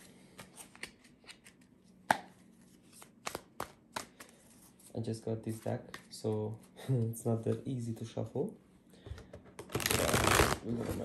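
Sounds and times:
cards being shuffled: 2.6 - 4.9, 9.6 - 11.0.

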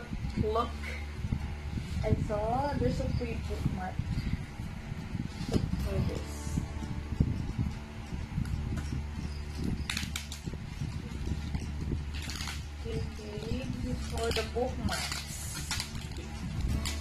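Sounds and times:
bubble wrap crinkling: 8.8 - 17.0.

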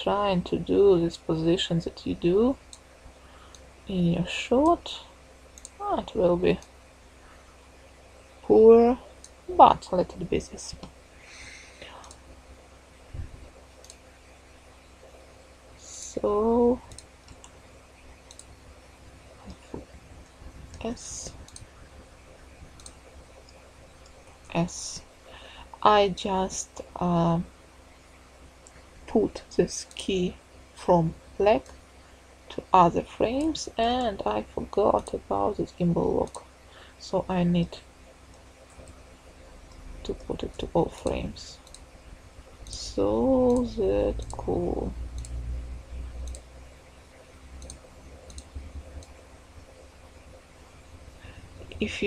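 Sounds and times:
low steady hum: 0.0 - 52.0
low steady rumble: 0.0 - 52.0
computer mouse clicks: 5.6 - 5.8, 16.9 - 18.6, 19.4 - 21.8, 22.7 - 24.6, 36.2 - 36.5, 38.3 - 39.1, 40.6 - 41.9, 42.6 - 45.4, 46.2 - 49.8.

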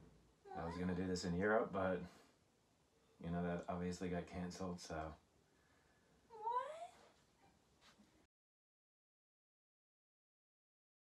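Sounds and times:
cat meowing: 0.5 - 1.0, 6.4 - 7.0.

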